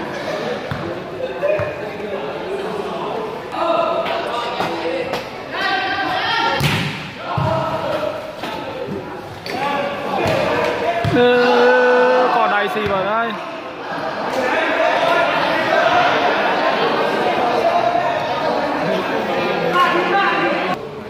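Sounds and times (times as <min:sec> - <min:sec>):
men talking and shouting: 0:00.0 - 0:20.8
volleyball smacks: 0:06.6 - 0:07.6.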